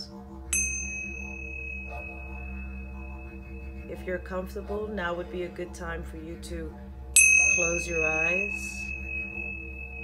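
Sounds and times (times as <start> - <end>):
brass hand chime ringing: 0.6 - 3.9, 7.2 - 10.0.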